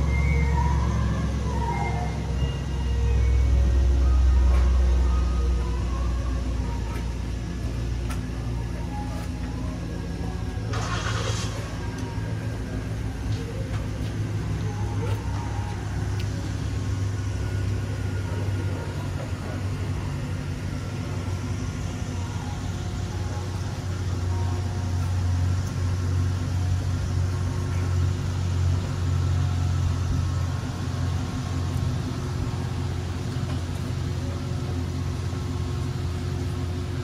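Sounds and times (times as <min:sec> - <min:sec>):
vehicle engine idling: 0:00.0 - 0:37.0.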